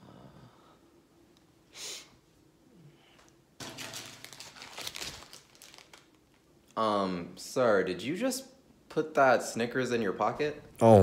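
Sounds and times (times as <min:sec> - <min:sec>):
plastic wrapper crinkling: 0:03.6 - 0:06.5.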